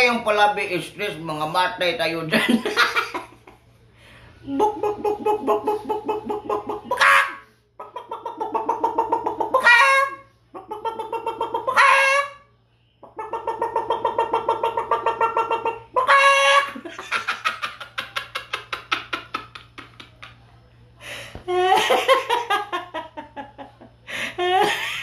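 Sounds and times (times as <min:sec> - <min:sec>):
man imitating chicken clucks: 0:04.4 - 0:12.4, 0:13.1 - 0:16.7.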